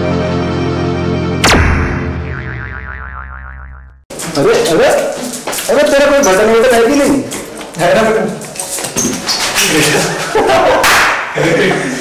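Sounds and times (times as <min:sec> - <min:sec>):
intro music: 0:00.0 - 0:04.0
comic boing sound effect: 0:01.4 - 0:04.0.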